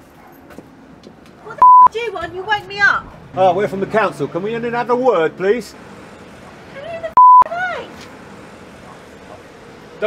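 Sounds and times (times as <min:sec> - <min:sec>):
censor bleep: 0:01.6 - 0:01.9, 0:07.2 - 0:07.5.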